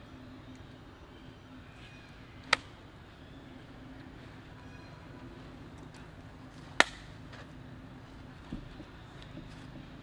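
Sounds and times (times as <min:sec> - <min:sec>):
low background hum: 0:00.0 - 0:10.0
sharp snap: 0:02.5 - 0:02.7, 0:06.8 - 0:07.1.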